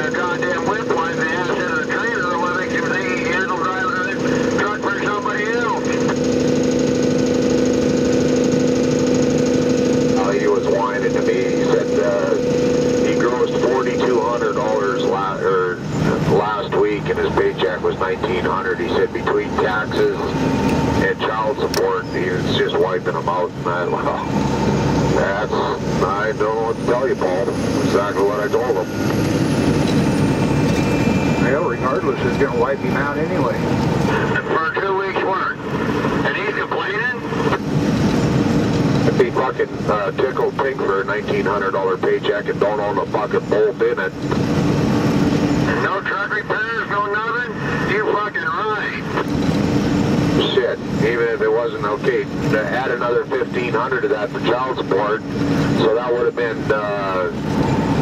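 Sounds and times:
people talking: 0.0s - 6.2s, 10.0s - 20.4s, 21.0s - 24.4s, 25.1s - 28.9s, 31.4s - 37.6s, 39.1s - 44.2s, 45.7s - 49.2s, 50.4s - 57.4s
vehicle engine and road noise: 0.0s - 58.0s.

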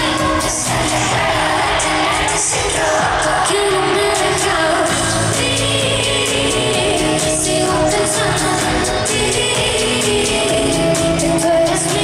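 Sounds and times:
amplified pop band music: 0.0s - 12.0s
woman singing into a microphone: 0.0s - 12.0s.

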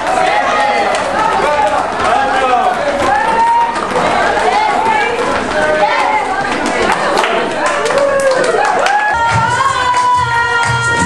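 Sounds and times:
group of people talking: 0.0s - 11.0s.

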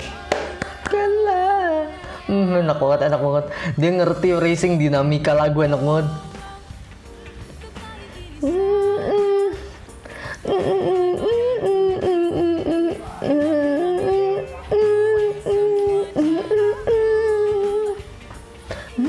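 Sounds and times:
girl singing: 0.0s - 2.9s, 7.5s - 9.8s, 10.5s - 19.0s
soft backing music: 0.0s - 19.0s.

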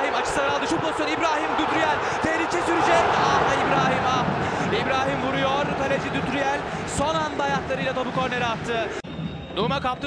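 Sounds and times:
crowd shouts: 0.0s - 9.0s
stadium crowd din: 0.0s - 10.0s.

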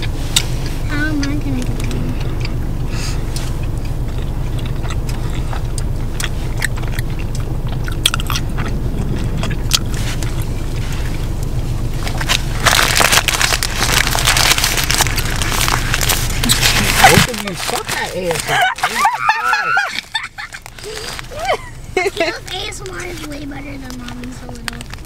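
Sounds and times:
chewing and biting food: 0.0s - 21.4s
low car hum: 0.0s - 25.0s
paper wrapper crinkling: 9.8s - 25.0s.

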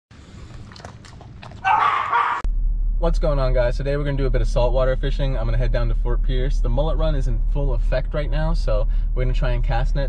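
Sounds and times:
dog eating kibble from metal bowl: 0.3s - 1.7s
dog vocalization: 0.4s - 2.4s.

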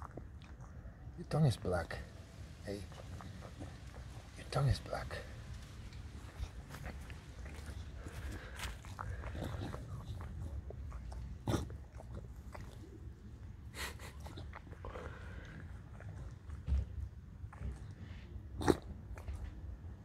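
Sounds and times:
dog licking and chewing: 0.0s - 1.2s, 2.8s - 20.0s.

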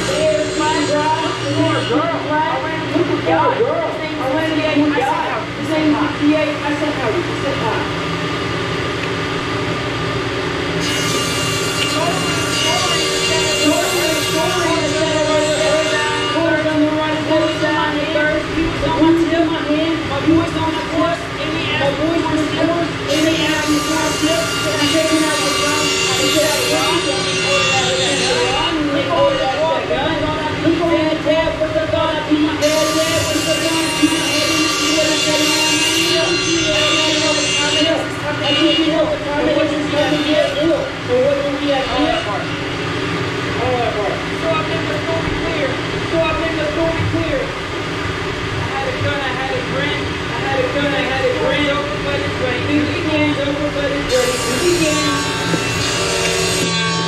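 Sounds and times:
steady hum: 0.0s - 57.0s.

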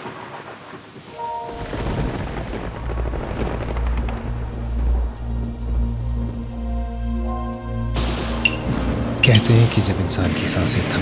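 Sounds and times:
heavy rain falling: 0.0s - 11.0s
low rumble of thunder: 1.4s - 9.2s.

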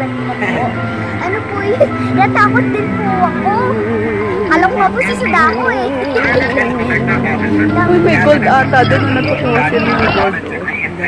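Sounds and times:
low hum: 0.0s - 11.0s
girl laughing and talking: 0.4s - 3.7s, 4.4s - 7.0s.

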